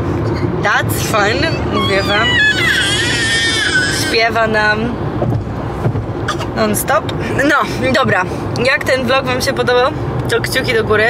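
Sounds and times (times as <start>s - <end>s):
car road rumble: 0.0s - 11.0s
baby squealing: 1.3s - 4.4s.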